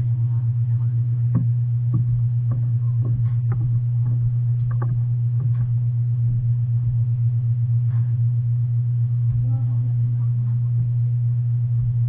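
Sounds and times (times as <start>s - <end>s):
loud steady low hum: 0.0s - 12.0s.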